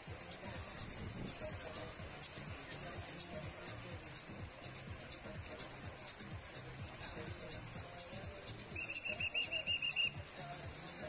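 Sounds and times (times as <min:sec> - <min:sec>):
faint background music: 0:00.0 - 0:11.0
whistle trilling: 0:08.6 - 0:10.3.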